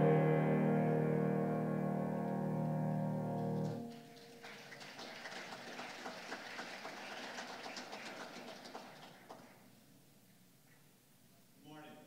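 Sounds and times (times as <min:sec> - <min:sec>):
piano note: 0:00.0 - 0:04.5
crowd clapping: 0:03.5 - 0:09.7.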